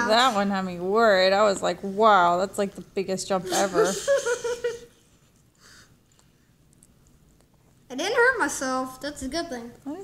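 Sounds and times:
person laughing: 0:03.5 - 0:05.0.

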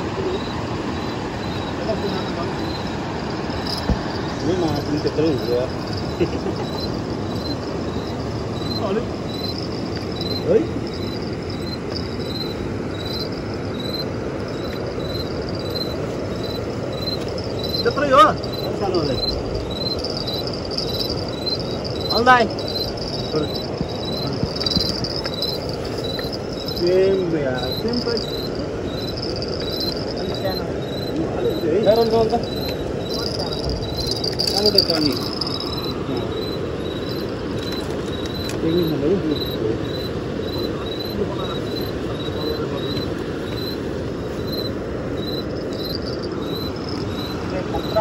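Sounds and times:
crickets chirping: 0:00.0 - 0:48.0
steady rushing noise: 0:00.0 - 0:48.0.

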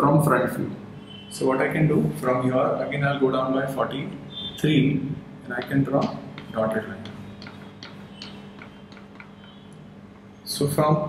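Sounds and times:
chalk tapping on blackboard: 0:05.5 - 0:09.8.

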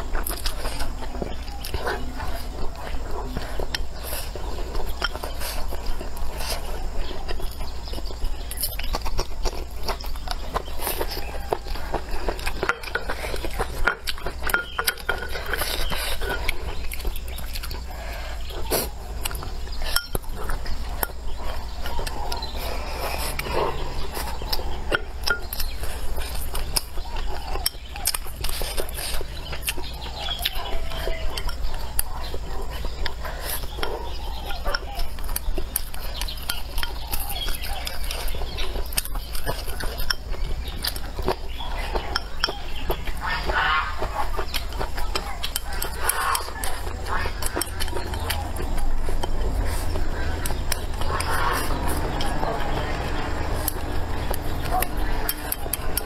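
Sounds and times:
utensils clinking on dishes: 0:00.0 - 0:08.9, 0:09.9 - 0:17.7, 0:19.2 - 0:22.5, 0:23.3 - 0:43.6.

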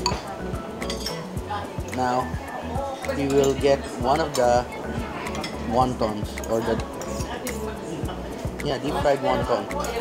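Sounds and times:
background music with steady beat: 0:00.0 - 0:10.0
spoon clinking on ceramic bowl: 0:00.8 - 0:01.2.

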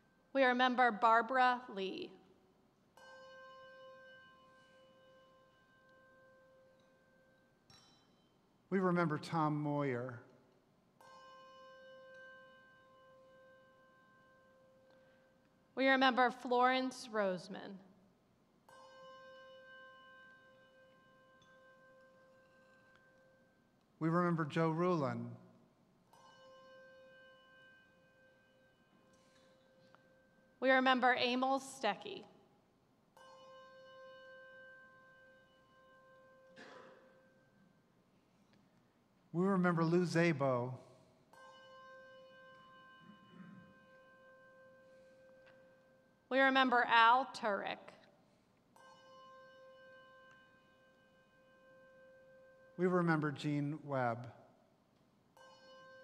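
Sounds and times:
faint bell ringing: 0:02.2 - 0:56.0
bell ringing: 0:18.6 - 0:25.2, 0:33.1 - 0:37.8, 0:48.7 - 0:53.2.

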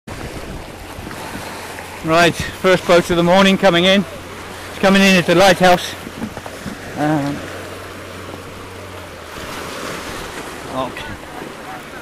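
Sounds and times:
wind buffeting microphone: 0:00.1 - 0:07.6
sea waves washing: 0:00.1 - 0:12.0.

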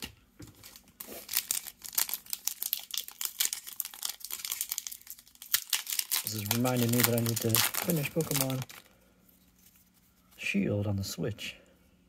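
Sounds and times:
foil wrapper crinkling and tearing: 0:00.6 - 0:09.0.

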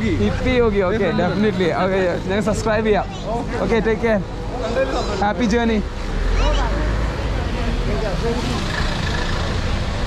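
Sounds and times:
people's voices: 0:00.0 - 0:10.0
traffic rumble: 0:00.0 - 0:10.0.

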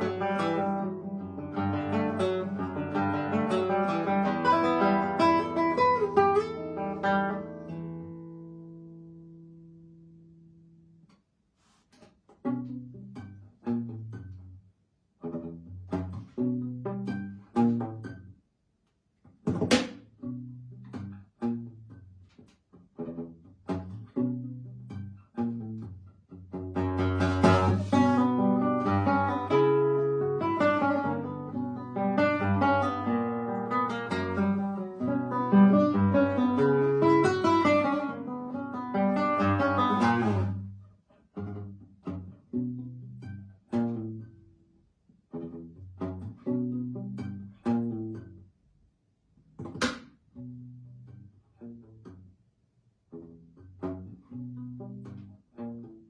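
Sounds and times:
classical guitar playing: 0:00.0 - 0:18.5, 0:19.2 - 0:56.0.

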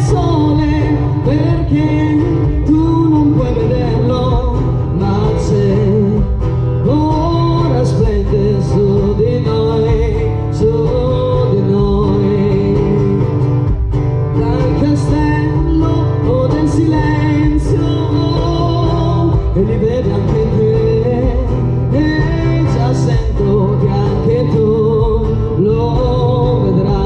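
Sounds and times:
woman singing: 0:00.0 - 0:13.3, 0:14.3 - 0:27.0
acoustic guitar: 0:00.0 - 0:27.0
low bass: 0:00.0 - 0:27.0.

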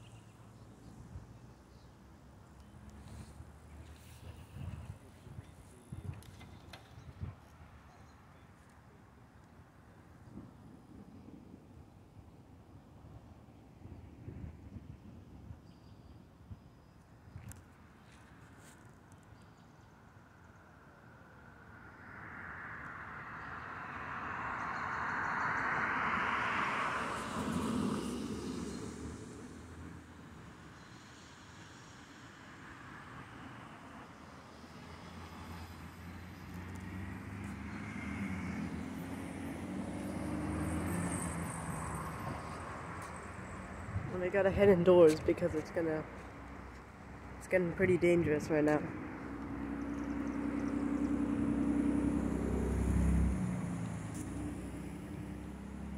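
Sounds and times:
vehicle passing: 0:21.8 - 0:30.3, 0:33.3 - 0:55.9
vehicle engine approaching: 0:34.5 - 0:55.9.

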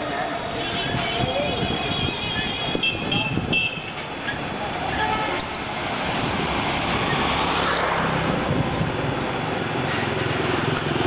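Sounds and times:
street traffic: 0:00.0 - 0:11.0
wind rumbling on microphone: 0:00.8 - 0:04.6, 0:05.7 - 0:09.7.

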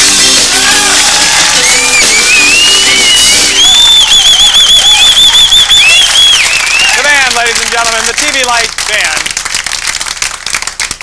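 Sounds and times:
house band music: 0:00.0 - 0:08.6.

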